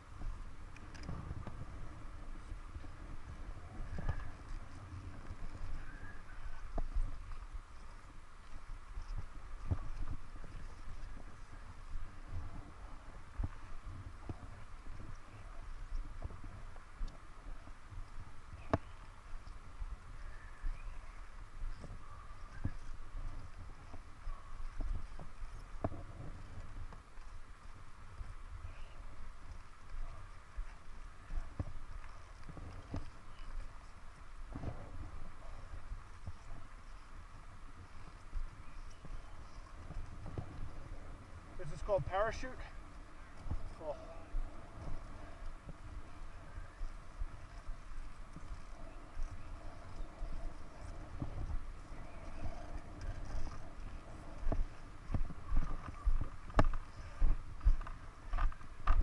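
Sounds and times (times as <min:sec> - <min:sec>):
wind rumble on microphone: 0:00.0 - 0:59.0.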